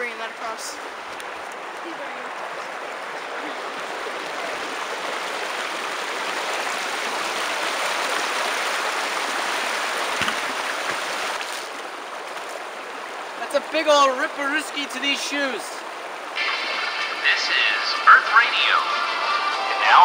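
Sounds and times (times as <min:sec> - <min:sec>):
creek water rushing over rocks: 0:00.0 - 0:20.0.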